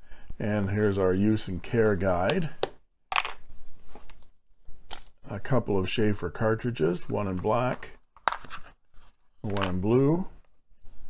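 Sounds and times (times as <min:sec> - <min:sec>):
paper and cardboard rustling: 0:07.1 - 0:10.2.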